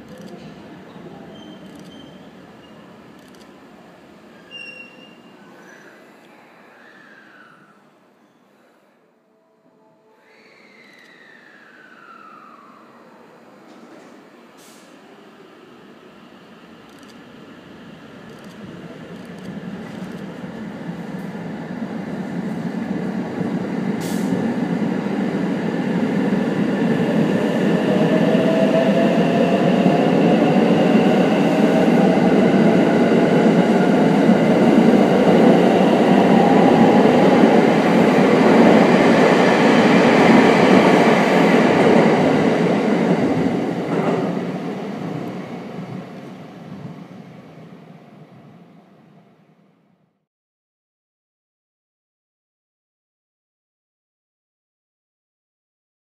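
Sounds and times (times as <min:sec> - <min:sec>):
train wheel and running noise: 0:13.6 - 0:47.4.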